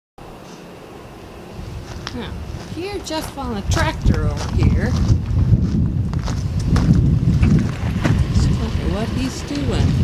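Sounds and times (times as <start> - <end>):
wind buffeting microphone: 1.5 - 10.0
person speaking: 2.1 - 5.0.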